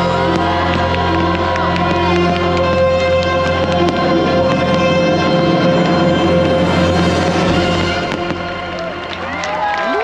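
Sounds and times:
soundtrack music chord: 0.0s - 10.0s
fireworks cracking and crackling: 0.2s - 10.0s.

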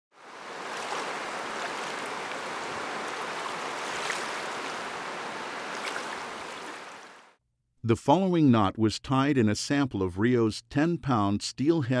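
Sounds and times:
rushing river water: 0.1s - 7.3s.

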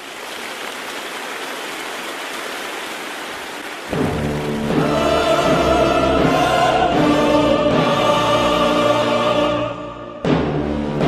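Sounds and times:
rain hiss: 0.0s - 5.6s.

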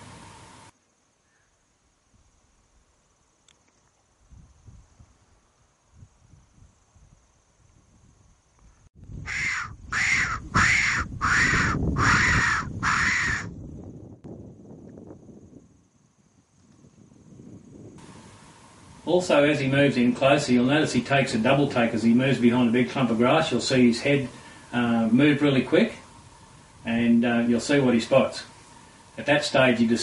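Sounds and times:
predator call whistle squealing: 9.3s - 13.5s.

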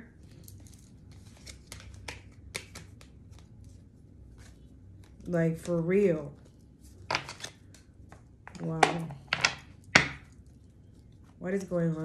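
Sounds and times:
cards being shuffled: 0.3s - 5.9s, 6.5s - 8.6s.

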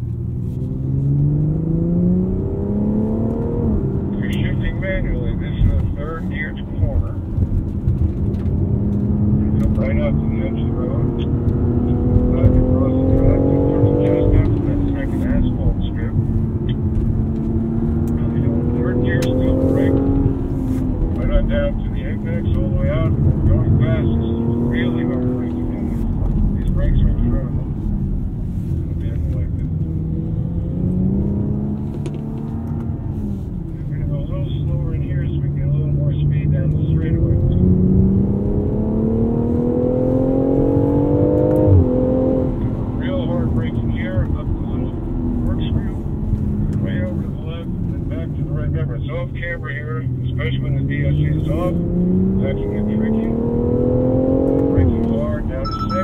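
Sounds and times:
car engine revving: 0.0s - 56.0s.

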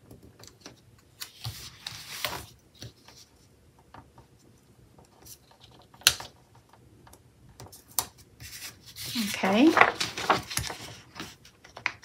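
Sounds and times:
paper rustle: 0.4s - 3.4s, 7.7s - 12.0s.

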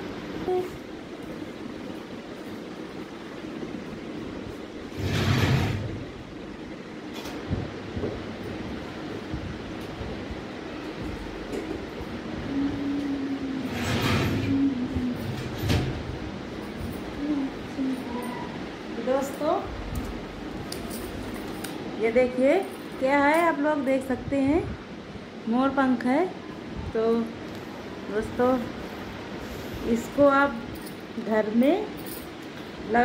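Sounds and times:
ceiling fan whirring: 0.0s - 33.0s.

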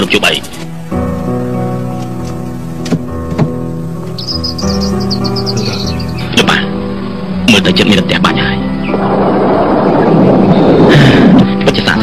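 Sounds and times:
background music: 0.0s - 12.0s
songbird chirping: 0.6s - 7.3s.

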